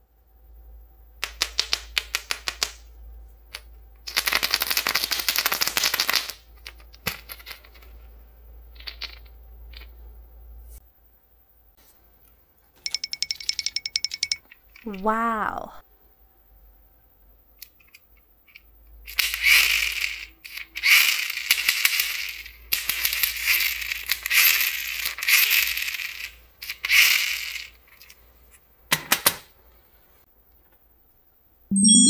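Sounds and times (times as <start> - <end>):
plastic toy train rattling: 4.1 - 7.9, 19.1 - 28.2
rising chiming musical run: 31.7 - 32.0.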